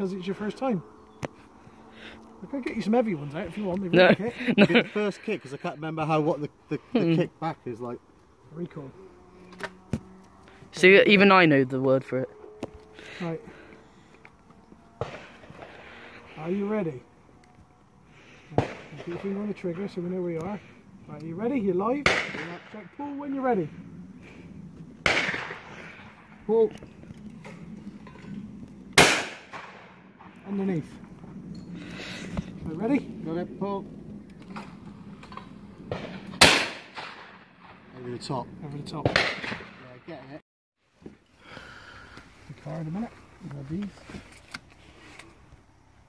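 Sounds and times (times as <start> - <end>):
shotgun shot: 15.0 - 15.8, 18.5 - 19.4, 22.0 - 22.8, 25.0 - 26.2, 29.0 - 30.3, 35.9 - 37.9, 39.0 - 40.0.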